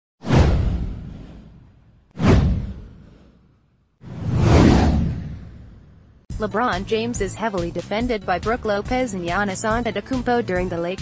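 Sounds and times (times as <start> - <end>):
whoosh sound effect: 0.2 - 6.0
deep low boom: 0.3 - 3.2, 4.1 - 6.2.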